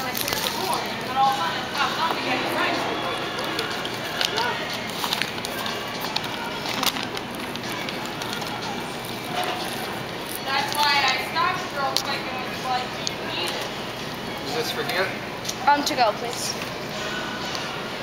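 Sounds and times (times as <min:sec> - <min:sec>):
indistinct chatter: 0:00.0 - 0:18.0.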